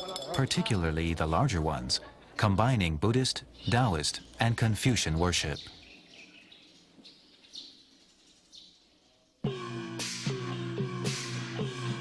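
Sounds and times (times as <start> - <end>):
faint bird chirps: 3.4 - 4.4, 5.2 - 9.4.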